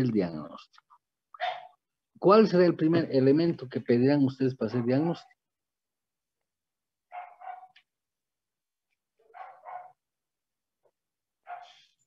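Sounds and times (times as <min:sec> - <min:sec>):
dog barking: 0:01.4 - 0:01.8, 0:04.7 - 0:05.1, 0:07.1 - 0:07.8, 0:09.2 - 0:10.0, 0:11.4 - 0:11.9.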